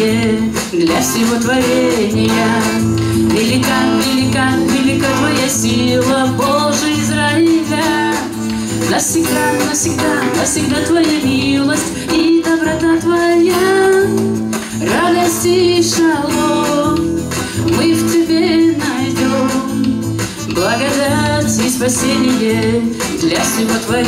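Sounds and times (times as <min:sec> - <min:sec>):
strummed acoustic guitar: 0:00.0 - 0:24.0
woman singing: 0:00.0 - 0:24.0.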